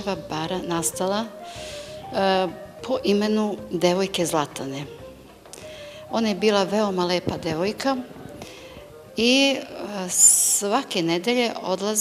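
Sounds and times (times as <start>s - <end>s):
woman speaking: 0.0s - 1.4s, 2.1s - 5.0s, 6.1s - 8.2s, 9.2s - 12.0s.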